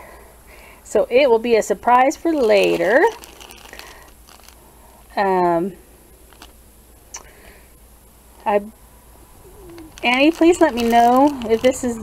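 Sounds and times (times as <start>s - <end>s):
plastic bag rustling: 1.9s - 5.6s, 6.2s - 6.6s, 9.3s - 12.0s
rustling in a cardboard box: 2.1s - 5.2s, 6.3s - 6.6s, 9.5s - 12.0s
person speaking: 2.2s - 3.8s, 9.5s - 12.0s.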